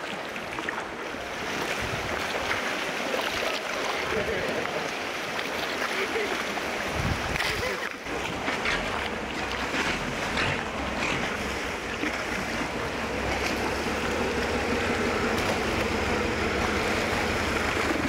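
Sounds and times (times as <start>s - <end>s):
water sloshing: 0.0s - 18.0s
boat engine running: 0.8s - 18.0s
wind noise on microphone: 1.7s - 2.2s, 6.9s - 7.7s.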